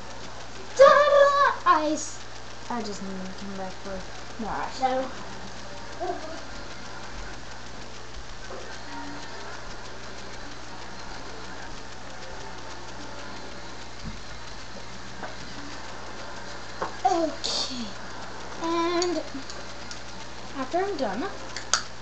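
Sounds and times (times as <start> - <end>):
room noise hum and hiss: 0.0 - 22.0
faint distant voices: 4.3 - 20.6.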